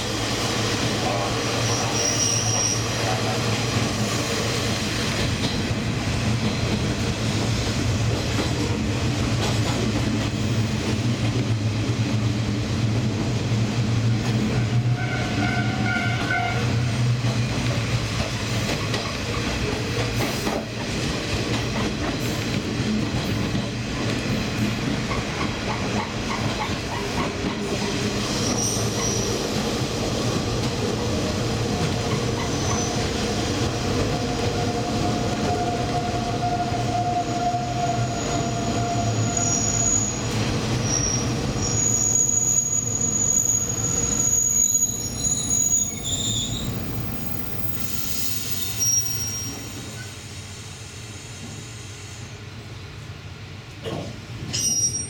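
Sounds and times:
diesel train running on rails: 0.0 - 55.0
train wheels squealing: 1.0 - 4.4, 25.1 - 29.6, 32.1 - 33.4, 34.5 - 52.4, 54.5 - 55.0.

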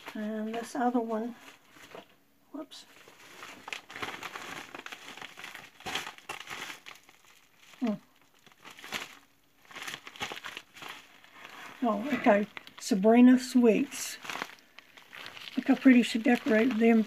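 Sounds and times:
paper and envelope rustling: 0.0 - 2.1, 2.8 - 17.0.

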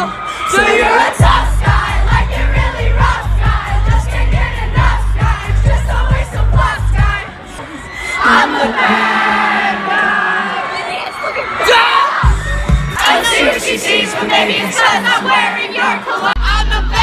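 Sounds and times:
live concert music with heavy bass: 0.0 - 7.9, 8.6 - 17.0
crowd shouting and singing: 0.0 - 17.0.

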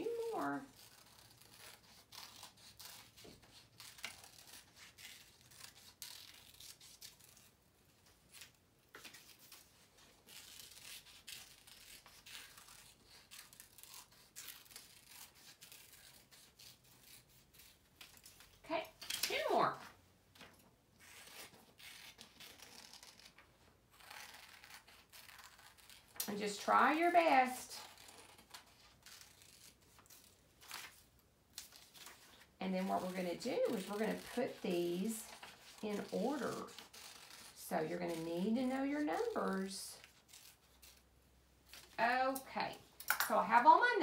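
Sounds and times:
scissors snipping paper: 0.0 - 7.5, 10.3 - 19.8, 24.0 - 41.0
paper rustling: 8.1 - 41.1.

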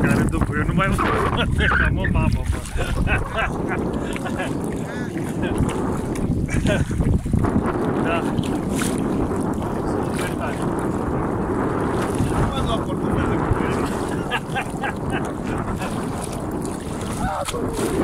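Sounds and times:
legs wading through water: 0.0 - 18.0
wind buffeting microphone: 0.0 - 18.0.

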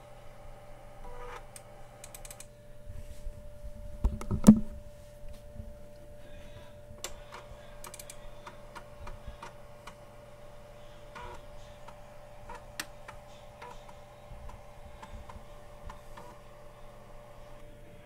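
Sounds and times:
low electrical hum: 0.0 - 18.0
computer mouse clicks: 1.3 - 2.5, 7.8 - 8.2.

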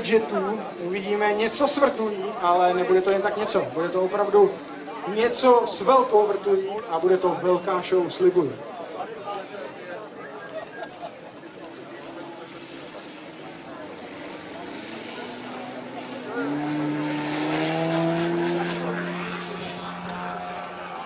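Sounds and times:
model plane engine droning: 11.4 - 21.0.

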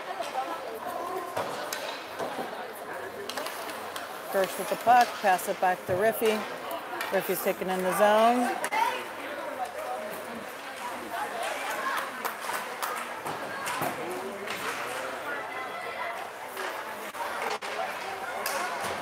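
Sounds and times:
spectator chatter echoing: 0.0 - 19.0.

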